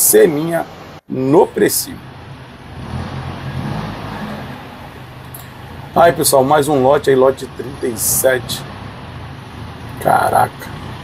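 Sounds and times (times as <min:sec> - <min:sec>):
diesel engine idling: 0:01.9 - 0:11.0.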